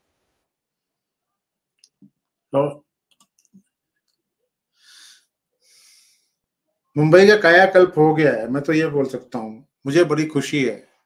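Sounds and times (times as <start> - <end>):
soft breaths: 4.7 - 6.6.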